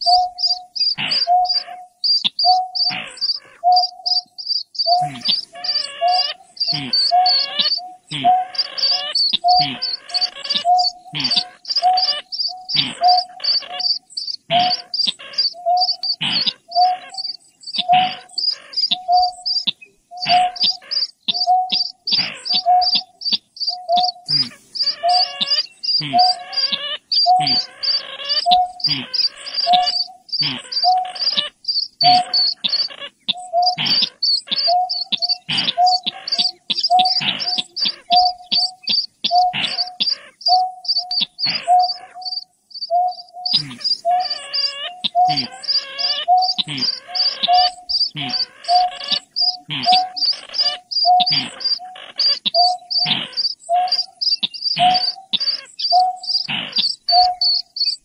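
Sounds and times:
harsh wavering bird chatter: 0.0 - 58.0
high chirps: 0.0 - 58.0
low hooting bird notes: 0.0 - 58.0.

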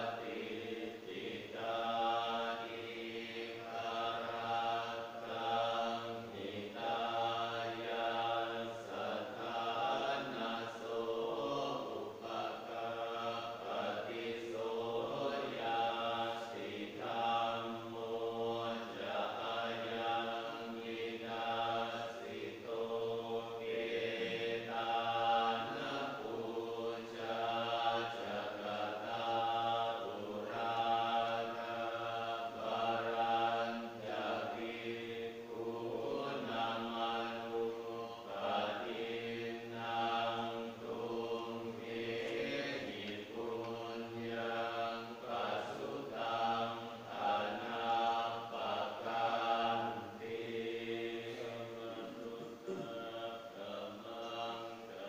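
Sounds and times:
monks chanting in unison: 0.0 - 55.0.

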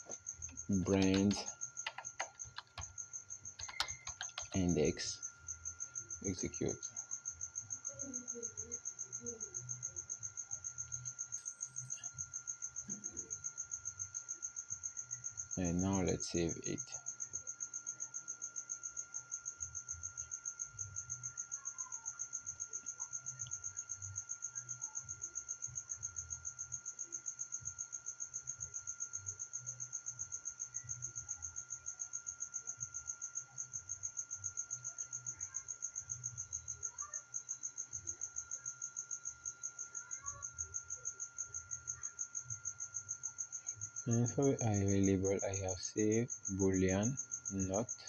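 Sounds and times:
crickets trilling: 0.0 - 48.0
faint room noise: 0.0 - 48.0.

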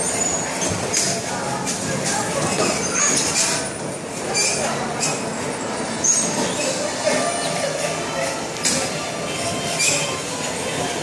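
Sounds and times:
bumper cars rumbling and scraping: 0.0 - 11.0.

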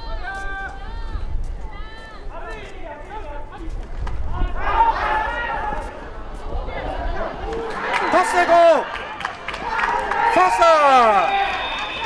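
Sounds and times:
people shouting drawn-out calls: 7.3 - 12.0.

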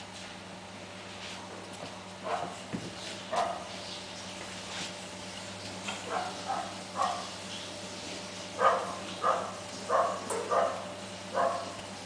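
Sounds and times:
puppy barking: 2.2 - 2.6, 3.3 - 3.7, 6.0 - 7.3, 8.6 - 11.8.

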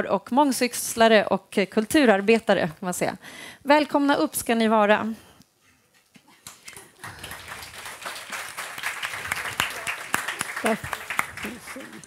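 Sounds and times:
audience applauding: 6.7 - 12.0.

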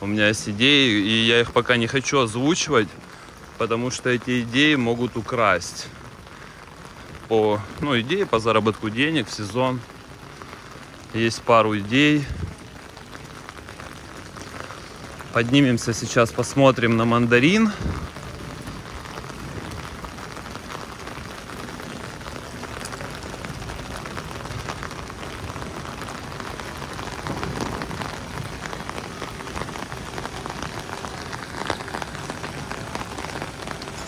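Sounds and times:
rain on stone paving: 0.0 - 34.0.

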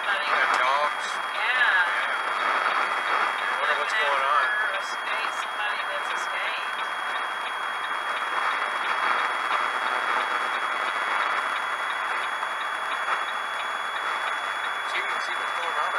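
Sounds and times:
faint high whine: 0.0 - 15.9
truck road and engine noise: 0.0 - 15.9.

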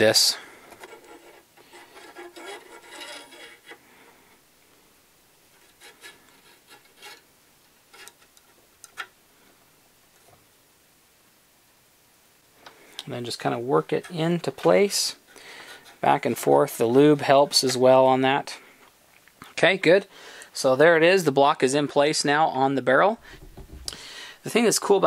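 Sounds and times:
metal scraping on metal: 0.6 - 3.9, 5.5 - 7.3, 7.9 - 8.4.

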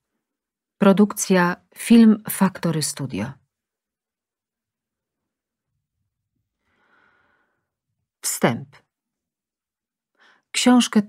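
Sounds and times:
woman's soft intake of breath: 6.6 - 7.8.

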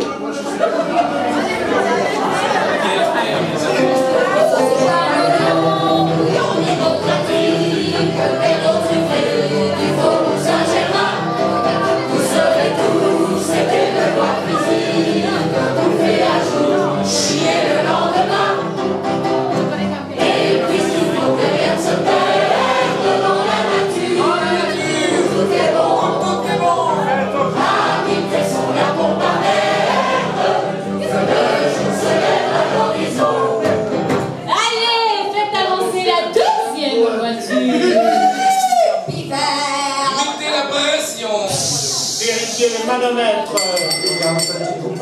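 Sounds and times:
electric keyboard: 0.6 - 34.5
women singing in chorus: 4.3 - 18.7, 20.2 - 26.3, 27.6 - 34.1.

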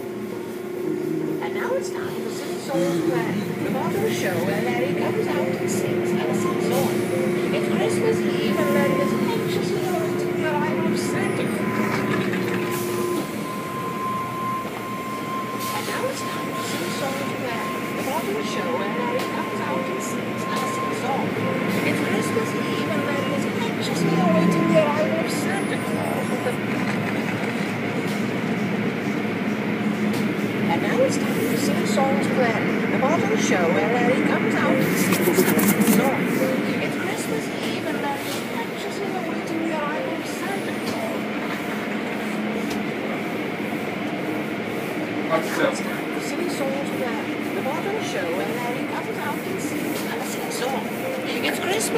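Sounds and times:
car wash machinery running: 0.0 - 51.9
faint voices: 0.0 - 51.9
spinning brushes: 34.8 - 36.2.

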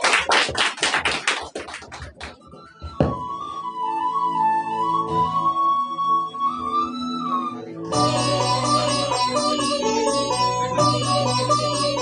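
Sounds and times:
small audience clapping: 0.0 - 2.7.

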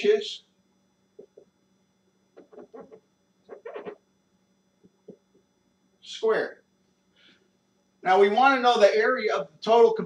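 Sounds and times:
marker squeaking on whiteboard: 2.4 - 4.0.

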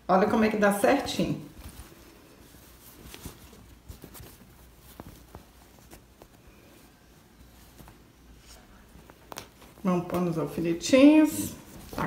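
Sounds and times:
fabric rustling: 0.2 - 12.0.

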